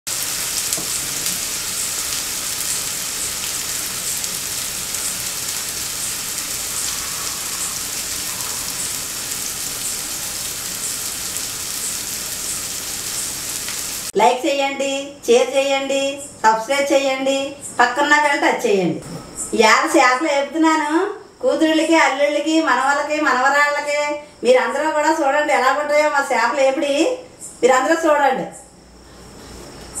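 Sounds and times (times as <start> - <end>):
fish sizzling in oil: 0.1 - 14.2.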